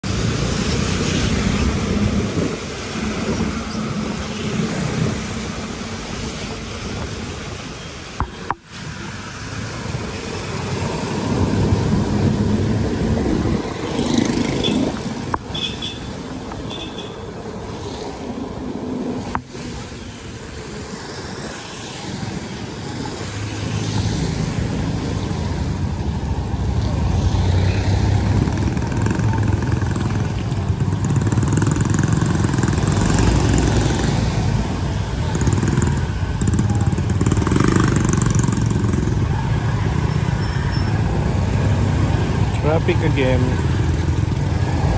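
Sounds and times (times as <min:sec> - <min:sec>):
road noise: 0:00.0 - 0:44.9
traffic: 0:00.0 - 0:44.9.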